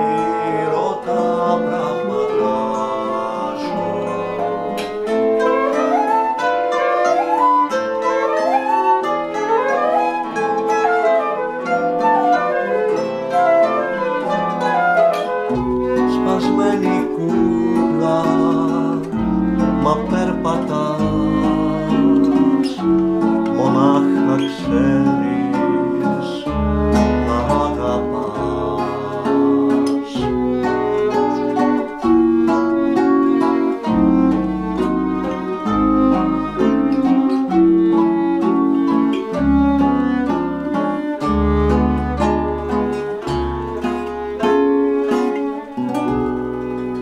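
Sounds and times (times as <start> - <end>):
bowed violin: 0.0 - 47.0
classical guitar: 0.0 - 47.0
plucked double bass: 0.0 - 47.0.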